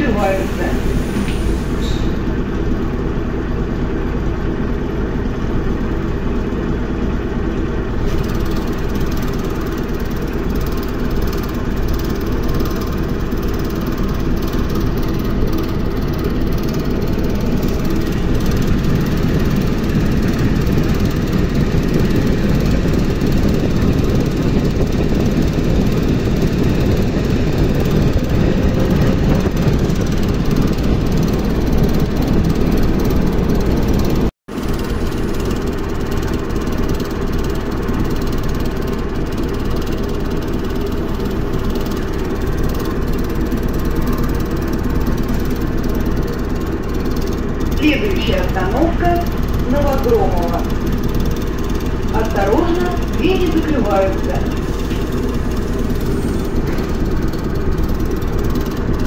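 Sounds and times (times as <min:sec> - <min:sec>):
traction motors humming: 0:00.0 - 0:59.0
train wheels on rails: 0:00.0 - 0:59.0.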